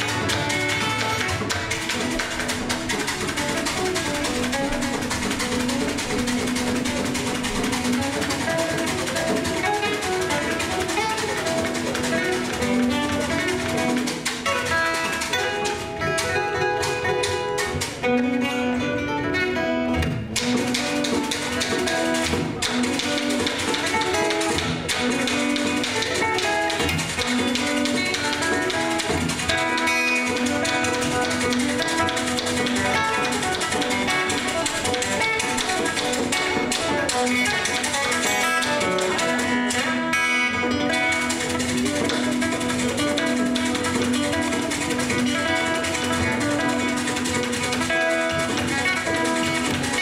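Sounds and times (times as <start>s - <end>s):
fingerpicked acoustic guitar: 0.0s - 50.0s.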